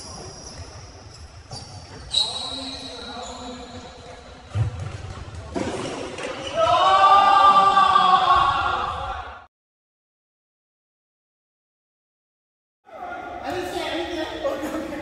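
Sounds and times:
shoe squeaks: 0.0s - 4.4s.

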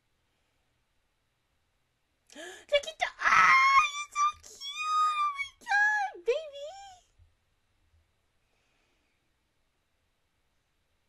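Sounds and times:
breathy gasp: 2.3s - 2.7s
high-pitched wailing cries: 3.2s - 7.0s.

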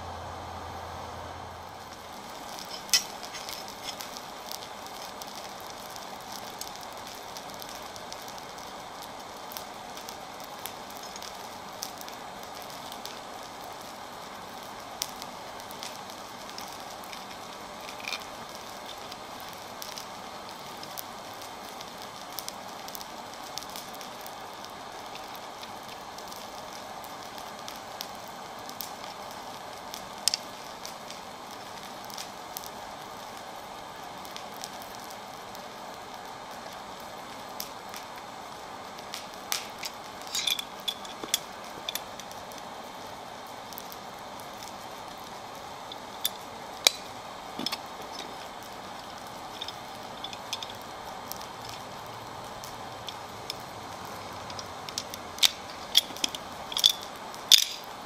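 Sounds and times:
forge fire rushing and crackling: 0.0s - 58.0s
metallic clicks of steel rods: 40.3s - 42.1s, 54.5s - 57.8s.

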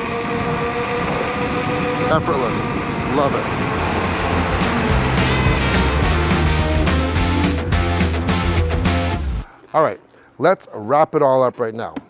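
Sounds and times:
wind rushing: 0.0s - 8.8s
electric scooter motors whining: 0.0s - 9.4s
road noise: 0.0s - 9.5s.

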